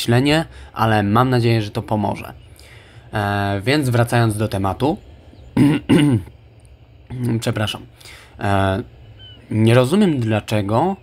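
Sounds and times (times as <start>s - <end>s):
man clearing his throat: 5.6s - 6.3s.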